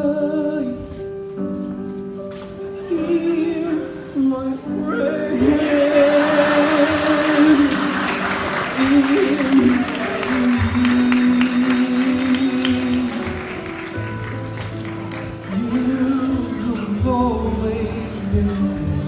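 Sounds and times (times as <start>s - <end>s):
young man singing: 0.0s - 1.1s, 2.7s - 14.0s, 15.3s - 19.0s
musical accompaniment: 0.0s - 19.0s
audience applause and cheering: 5.3s - 15.9s.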